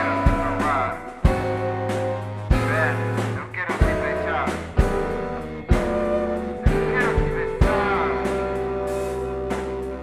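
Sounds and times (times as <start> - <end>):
low bass line: 0.0 - 10.0
recorders and guitar: 0.0 - 10.0.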